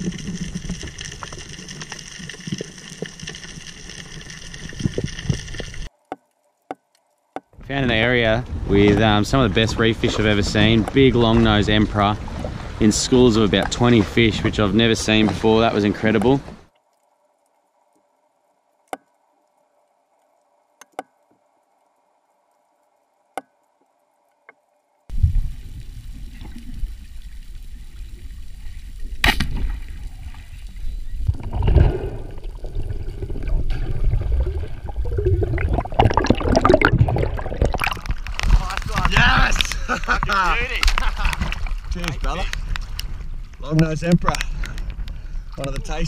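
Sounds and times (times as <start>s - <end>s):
water splashing: 0.0s - 17.1s, 25.1s - 46.0s
deep water noise and sloshing: 7.6s - 16.7s, 25.1s - 46.0s
sharp clicks underwater: 18.8s - 19.5s, 20.8s - 21.4s, 23.3s - 24.6s, 33.3s - 46.0s
sharp crack: 29.2s - 30.1s, 37.7s - 43.1s.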